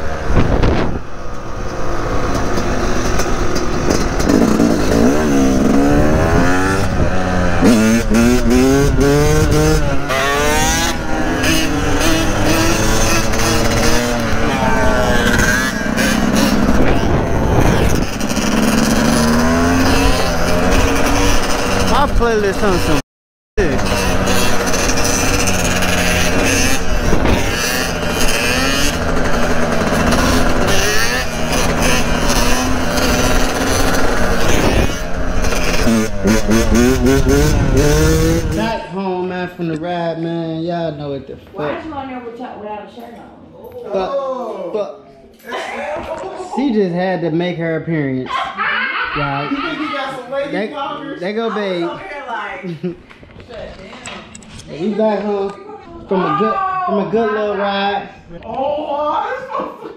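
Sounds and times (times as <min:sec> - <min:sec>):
dirt bike engine revving: 0:00.0 - 0:23.0, 0:23.6 - 0:39.5
another motor running: 0:23.6 - 0:38.6.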